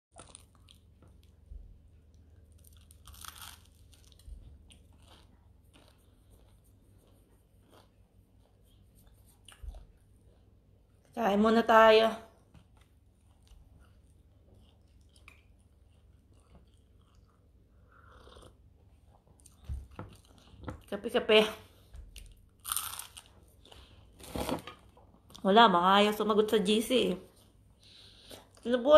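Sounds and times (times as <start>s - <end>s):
person chewing bread crust: 0.1s - 11.2s, 12.3s - 20.9s, 21.8s - 24.1s
low steady hum: 0.1s - 28.9s.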